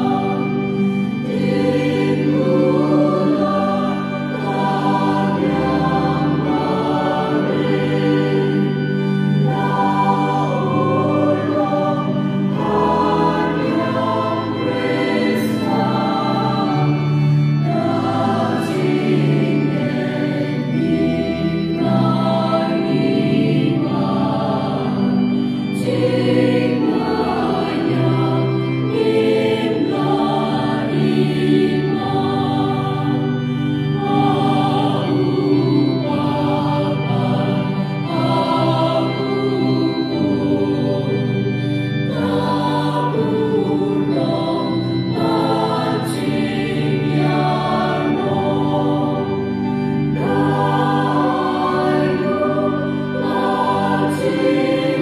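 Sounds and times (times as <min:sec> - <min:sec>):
choir singing a hymn: 0:00.0 - 0:55.0.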